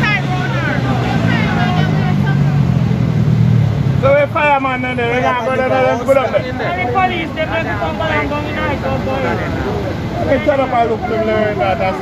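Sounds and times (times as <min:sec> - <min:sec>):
people talking: 0:00.0 - 0:02.9, 0:04.0 - 0:12.0
vehicle engine droning: 0:00.0 - 0:12.0.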